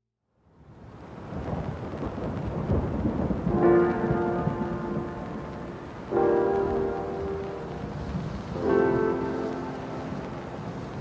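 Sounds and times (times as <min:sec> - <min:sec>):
steady rain: 0:00.4 - 0:11.0
thunder rumble: 0:01.1 - 0:11.0
sustained musical notes: 0:03.5 - 0:11.0.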